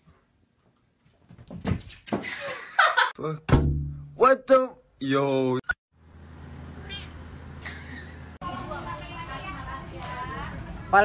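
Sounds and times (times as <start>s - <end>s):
cat meowing: 6.8s - 7.2s.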